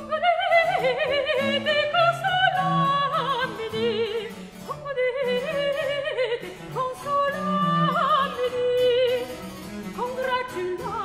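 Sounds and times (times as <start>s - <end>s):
soprano voice singing: 0.0s - 11.0s.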